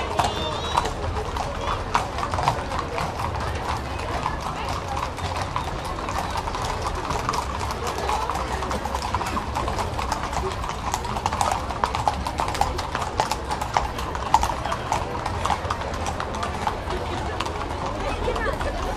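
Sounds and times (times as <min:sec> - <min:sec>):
hooves clip-clopping on pavement: 0:00.0 - 0:18.9
people talking: 0:00.0 - 0:18.9.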